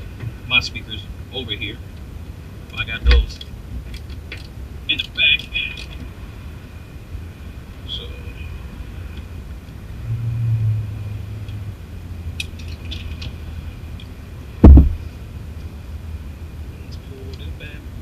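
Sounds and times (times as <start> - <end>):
steady low rumble: 0.0 - 18.0
heavy low thump: 3.0 - 3.4, 14.6 - 15.1.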